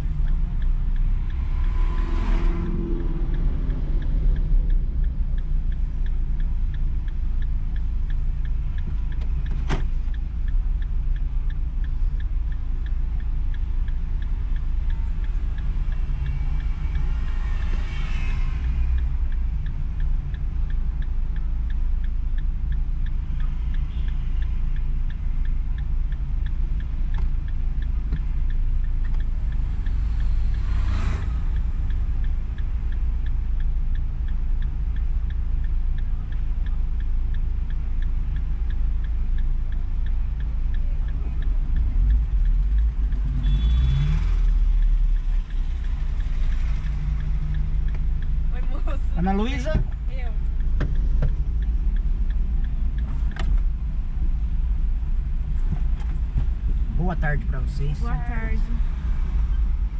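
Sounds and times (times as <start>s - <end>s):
faint regular ticking: 0.0s - 59.9s.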